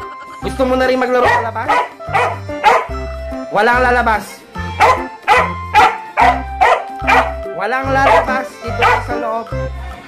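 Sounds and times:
background music with bass: 0:00.0 - 0:10.0
dog barking excitedly: 0:01.2 - 0:02.9, 0:04.8 - 0:07.4, 0:08.0 - 0:09.2.

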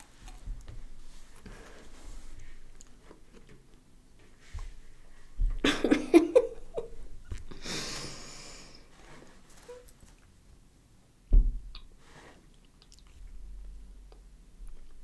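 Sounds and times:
long hissing breath: 0:07.6 - 0:08.9.

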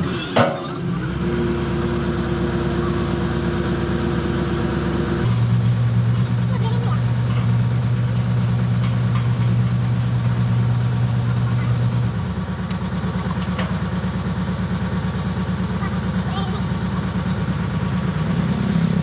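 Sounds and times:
diesel engine idling: 0:00.0 - 0:19.0.

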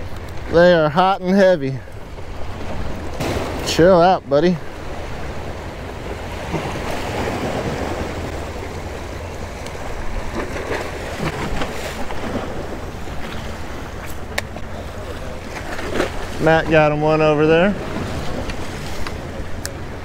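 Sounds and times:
small waves splashing against rocks: 0:02.2 - 0:04.0, 0:04.7 - 0:16.9.

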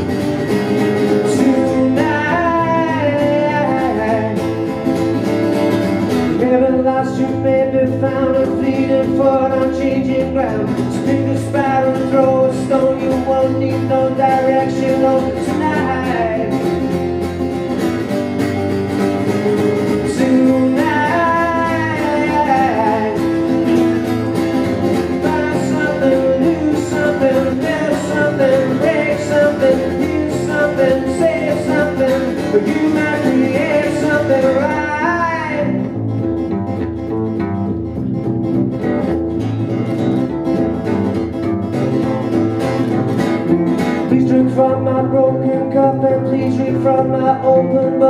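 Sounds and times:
acoustic guitar strumming: 0:00.0 - 0:48.0
double bass: 0:00.0 - 0:48.0.

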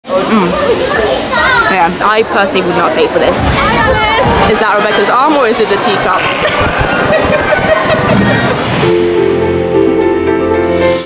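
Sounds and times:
people talking: 0:00.1 - 0:08.6
children's voices: 0:00.1 - 0:08.7.

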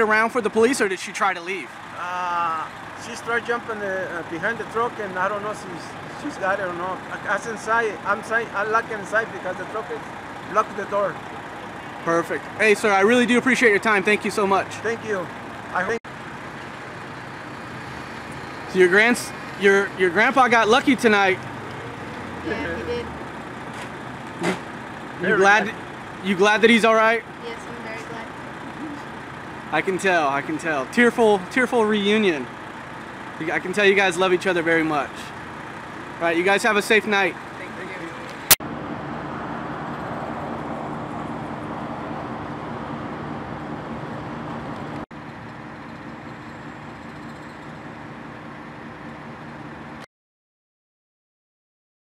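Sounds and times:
road noise: 0:00.0 - 0:50.1
street and vehicle noise: 0:00.0 - 0:50.1
traffic and engine hum: 0:00.0 - 0:50.1.

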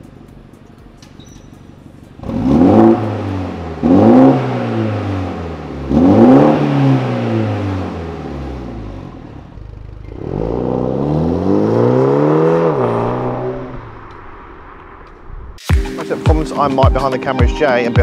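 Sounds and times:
car engine revving: 0:01.5 - 0:15.6.

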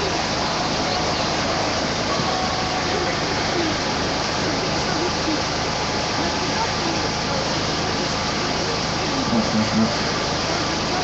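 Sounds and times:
dense background noise: 0:00.0 - 0:11.0
faint voices: 0:00.0 - 0:11.0.

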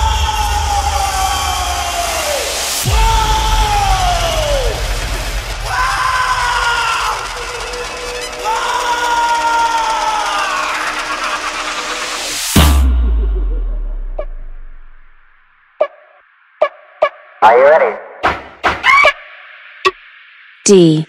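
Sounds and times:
crowd yelling: 0:00.0 - 0:11.7
deep bass throb: 0:02.9 - 0:08.6, 0:12.6 - 0:15.5.

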